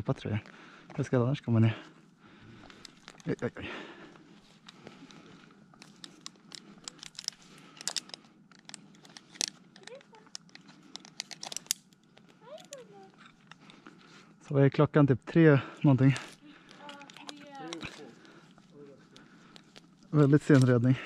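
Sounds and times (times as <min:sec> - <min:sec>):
twigs crackling: 0:02.6 - 0:14.3, 0:16.0 - 0:21.0.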